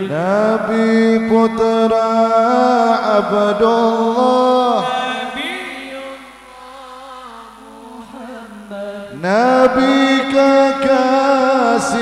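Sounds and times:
person singing chant: 0:00.0 - 0:12.0.

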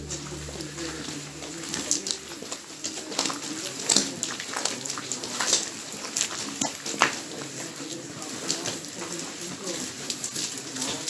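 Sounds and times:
faint low voice-like sound: 0:00.0 - 0:05.3.

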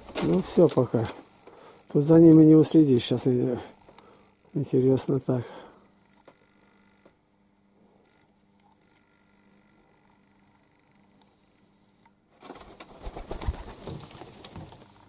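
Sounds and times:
pigeon wingbeats: 0:12.4 - 0:15.0.

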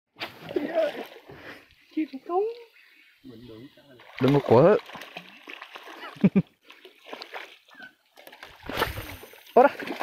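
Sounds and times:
fish splashing in water: 0:04.0 - 0:06.2, 0:06.8 - 0:10.0.

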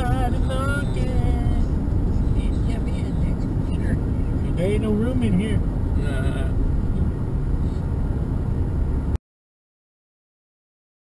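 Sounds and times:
car road and engine rumble: 0:00.0 - 0:09.2.

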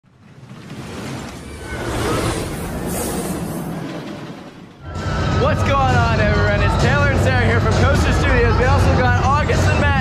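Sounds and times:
rumbling rush: 0:00.0 - 0:05.7
whoosh: 0:00.4 - 0:05.2.

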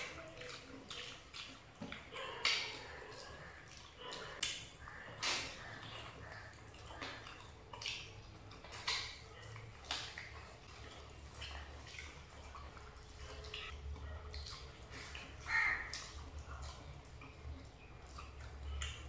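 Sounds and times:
wet smacking and chewing: 0:00.0 - 0:19.0.

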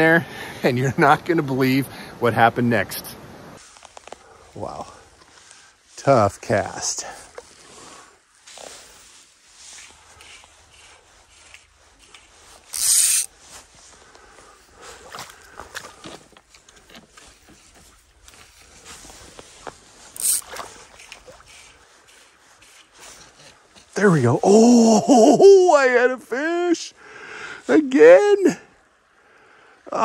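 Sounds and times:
clothing and gear rustling: 0:03.6 - 0:06.0, 0:07.0 - 0:24.0.

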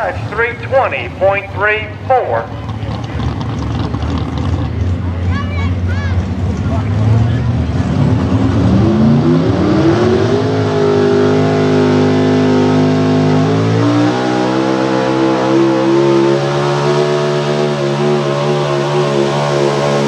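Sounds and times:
truck engine at full throttle: 0:00.0 - 0:20.0.

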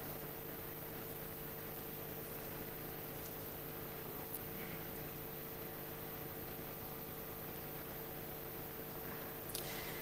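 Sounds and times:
faint electrical hum: 0:00.0 - 0:10.0
steady hiss: 0:00.0 - 0:10.0.

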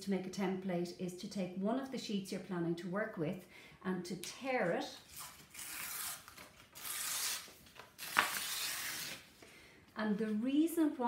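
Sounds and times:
paper tearing: 0:05.0 - 0:09.3.

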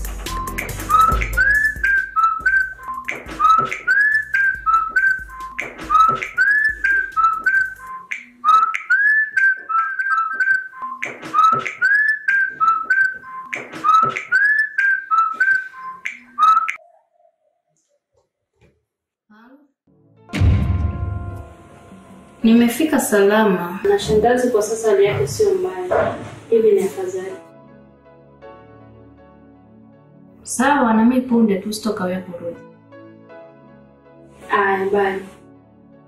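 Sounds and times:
whistled phone ringtone: 0:00.3 - 0:17.3.

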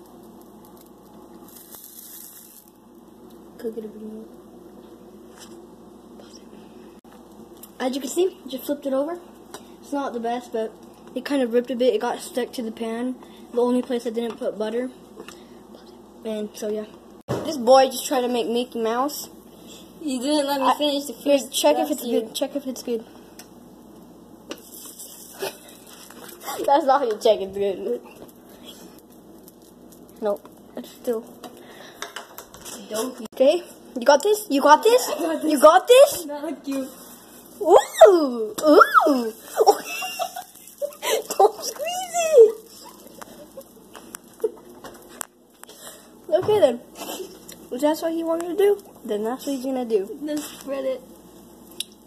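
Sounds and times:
batter sizzling in a pan: 0:00.0 - 0:05.9, 0:06.6 - 0:16.6, 0:17.3 - 0:52.0.

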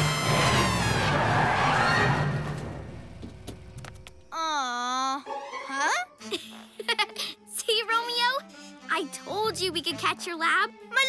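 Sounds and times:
cartoon soundtrack music: 0:04.3 - 0:11.0.

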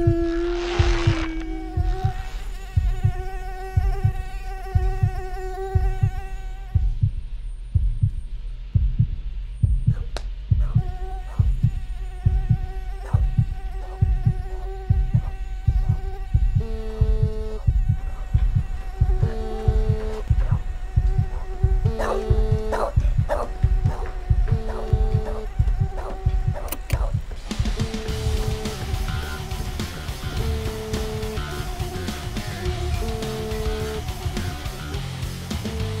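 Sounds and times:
heartbeat thumps: 0:00.0 - 0:36.0
steady droning tone: 0:12.7 - 0:36.0.

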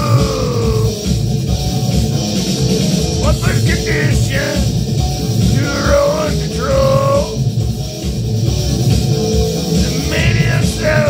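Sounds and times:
rock music: 0:00.0 - 0:11.0
man singing held note: 0:05.6 - 0:07.4, 0:09.9 - 0:11.0.

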